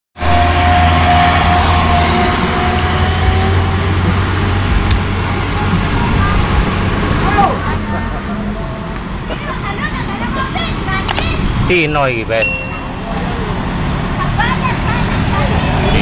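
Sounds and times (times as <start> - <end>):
diesel engine rumbling: 0.2 - 16.0.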